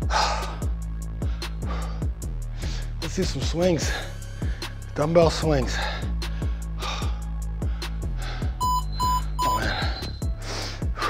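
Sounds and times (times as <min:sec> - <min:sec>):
background music with steady beat: 0:00.0 - 0:11.0
electronic timer beeps: 0:08.6 - 0:10.2.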